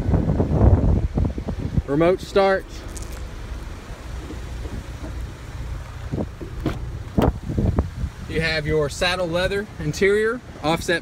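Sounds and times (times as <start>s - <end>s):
wind rumble on microphone: 0.0s - 9.6s
car door opening clicks: 6.2s - 7.4s.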